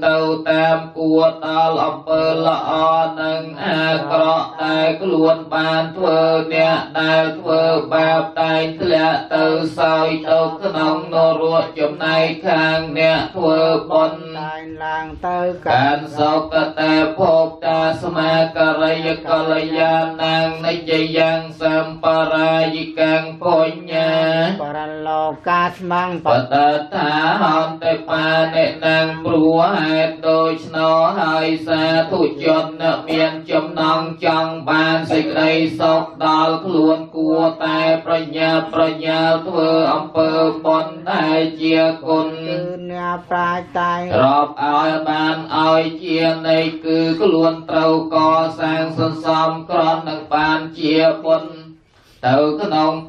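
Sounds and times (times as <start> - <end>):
male chanting: 0.0 - 53.0.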